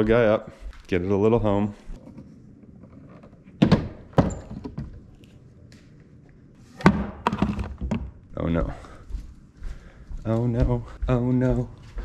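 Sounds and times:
case thunking on wood: 3.6 - 5.0.

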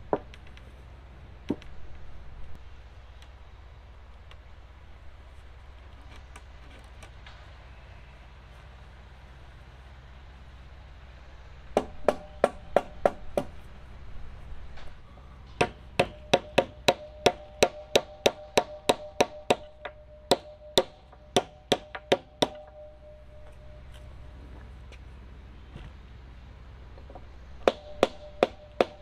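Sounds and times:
hammer blows on wood: 15.5 - 23.9
faint ring: 22.2 - 24.7.

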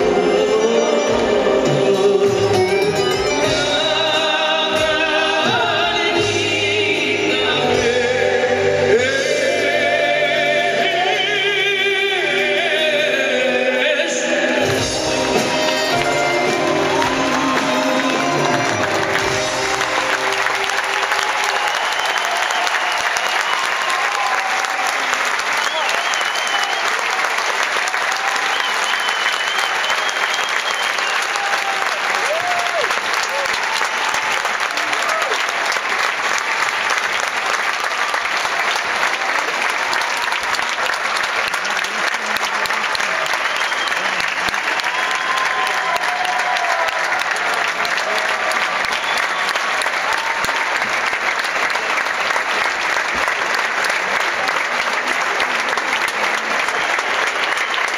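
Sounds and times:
audience applauding: 14.6 - 57.9.

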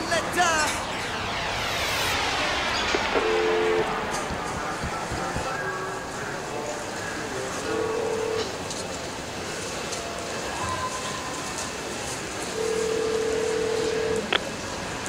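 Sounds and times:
steady noisy bed: 0.0 - 10.3
held electronic beeps: 0.8 - 3.9.

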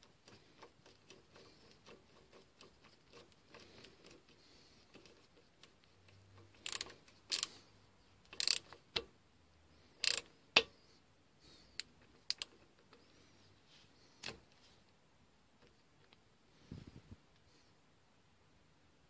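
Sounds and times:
ratcheting mechanism rattling: 0.0 - 7.6, 8.2 - 9.1, 10.0 - 10.3.

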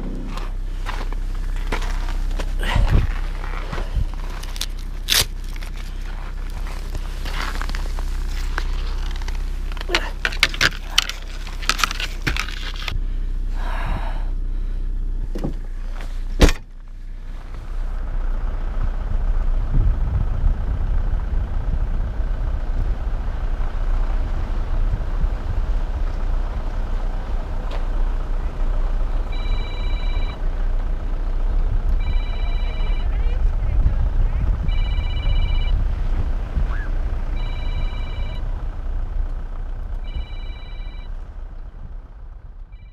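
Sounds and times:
handling noise: 0.0 - 13.0
car engine and road noise: 0.0 - 42.9
electronic warning chime beeping: 29.3 - 30.4, 32.0 - 33.2, 34.6 - 35.8, 37.4 - 38.4, 40.1 - 41.1.

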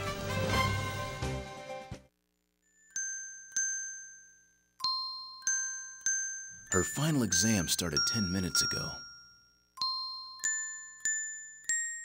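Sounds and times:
background music: 0.0 - 2.1
bell-like chimes: 2.6 - 12.0.

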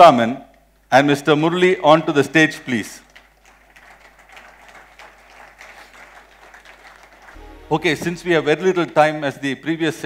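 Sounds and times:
faint audience applause: 3.0 - 7.6.

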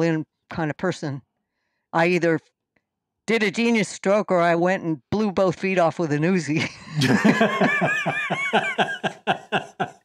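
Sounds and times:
man and woman laughing: 6.6 - 10.0.

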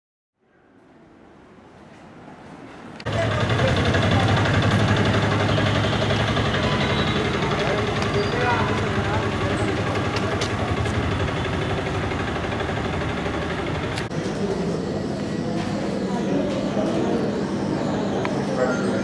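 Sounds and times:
low engine-like hum: 2.4 - 19.0
people talking: 3.1 - 19.0.

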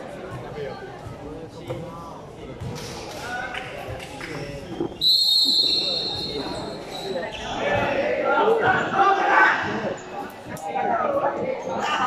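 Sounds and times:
voices echoing in hall: 0.0 - 12.0
referee's whistle blast: 5.0 - 6.5.

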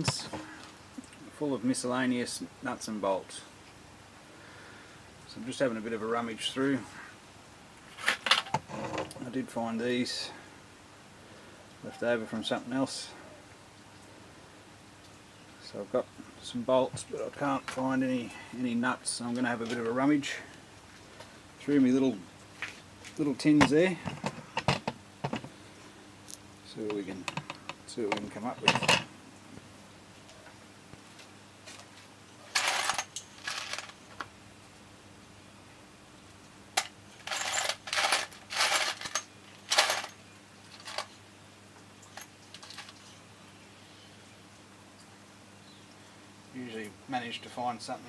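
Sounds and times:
nuts and bolts clinking in metal tin: 32.5 - 34.0, 36.8 - 41.2, 42.1 - 43.1.

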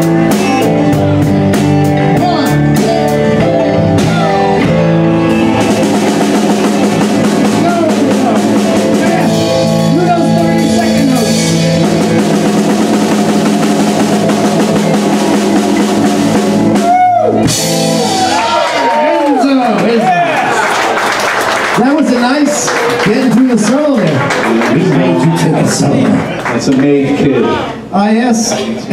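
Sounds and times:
live rock band playing: 0.0 - 28.6
crowd cheering and clapping: 4.0 - 9.6, 14.2 - 27.8.

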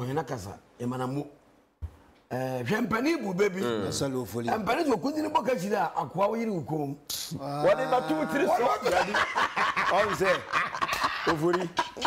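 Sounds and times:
people talking: 7.4 - 9.2
people laughing: 7.7 - 12.0.

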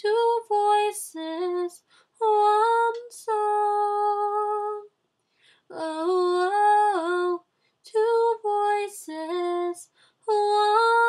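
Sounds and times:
girl singing wordless notes: 0.0 - 4.9, 5.7 - 11.0.

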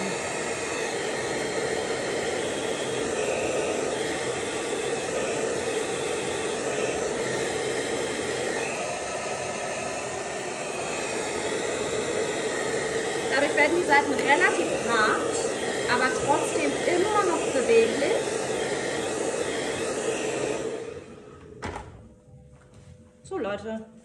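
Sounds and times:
hair dryer blowing: 0.0 - 22.1.

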